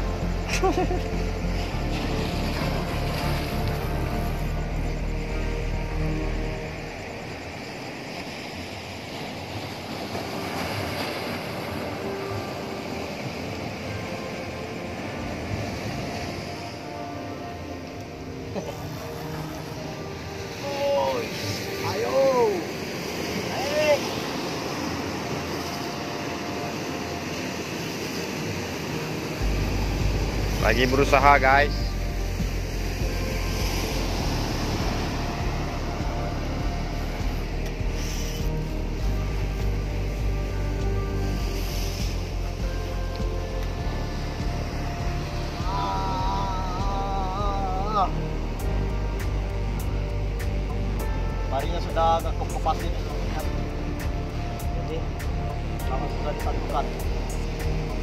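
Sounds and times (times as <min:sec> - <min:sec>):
background music: 0:00.0 - 0:58.0
sea surf washing on shore: 0:00.0 - 0:58.0.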